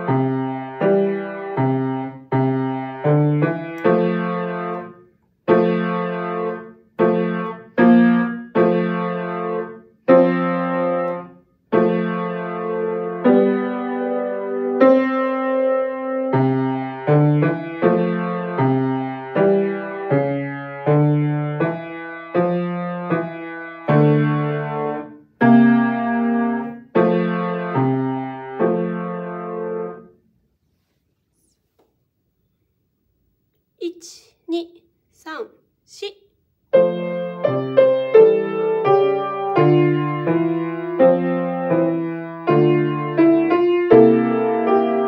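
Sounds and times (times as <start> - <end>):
piano playing low notes and chords: 0.0 - 30.1, 36.7 - 45.0.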